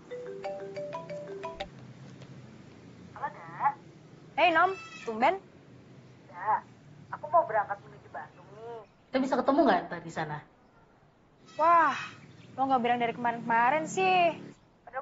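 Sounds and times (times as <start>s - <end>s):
phone electronic melody: 0.0s - 1.7s
woman talking: 4.4s - 5.4s, 11.6s - 15.0s.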